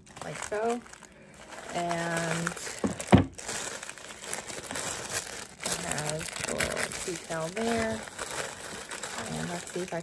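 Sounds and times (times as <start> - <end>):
tissue paper crinkling: 0.0 - 10.0.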